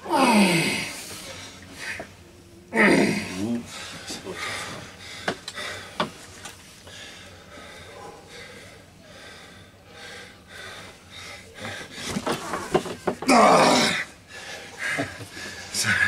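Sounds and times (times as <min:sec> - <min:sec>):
strained breathing: 0:03.1 - 0:12.8, 0:14.0 - 0:16.0.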